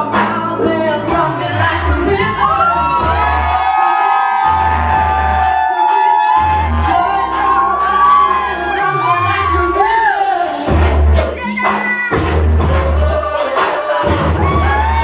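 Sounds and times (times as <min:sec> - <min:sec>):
loud dance music: 0:00.0 - 0:15.0
audience whooping and cheering: 0:02.2 - 0:10.7, 0:11.4 - 0:15.0.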